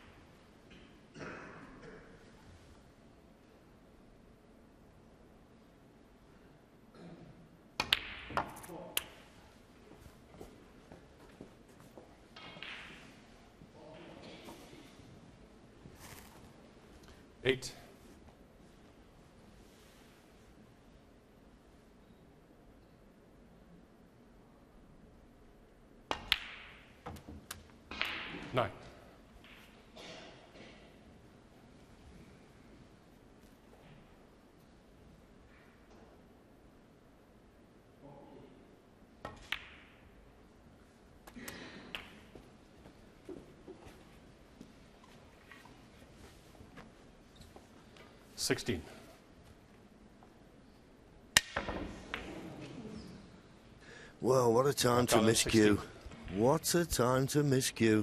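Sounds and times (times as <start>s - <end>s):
balls knocking: 7.8s - 9.1s, 12.3s - 13.2s, 26.1s - 28.5s
snooker balls clicking: 12.3s - 13.3s, 26.1s - 28.5s, 39.2s - 40.5s, 41.2s - 45.8s, 51.3s - 52.8s.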